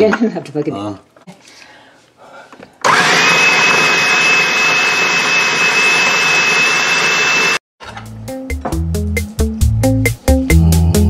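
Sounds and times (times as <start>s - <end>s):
food chopper motor whining: 2.8s - 7.6s.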